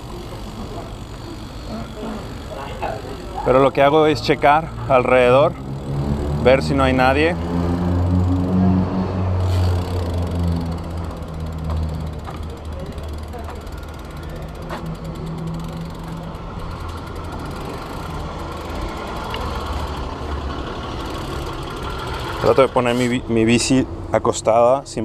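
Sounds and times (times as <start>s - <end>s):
bike freewheel ticking: 0.0s - 8.6s, 9.2s - 22.7s
vehicle engine idling: 0.0s - 23.5s.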